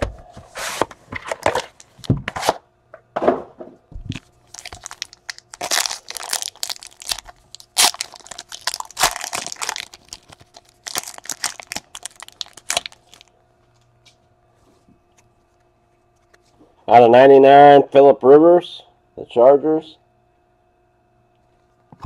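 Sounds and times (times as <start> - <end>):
foil wrapper crinkling: 1.4 - 2.1, 4.1 - 13.4.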